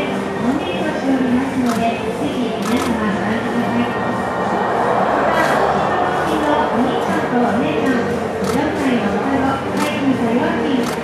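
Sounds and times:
people chattering: 0.0 - 11.0
camera shutter clicks: 2.6 - 3.0.

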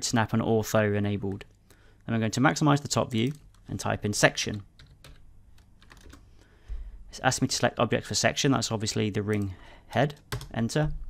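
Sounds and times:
keyboard keys tapping: 4.4 - 6.2, 10.2 - 10.6.

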